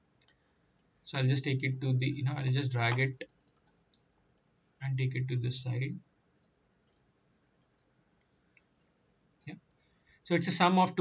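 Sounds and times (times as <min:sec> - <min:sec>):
computer mouse clicks: 0:01.6 - 0:05.0, 0:06.4 - 0:09.9.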